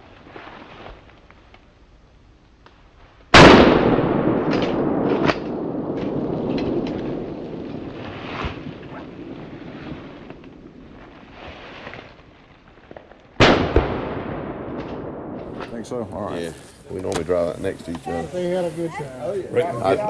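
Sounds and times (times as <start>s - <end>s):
gunshots echoing through woods: 3.3s - 11.4s, 13.4s - 16.3s.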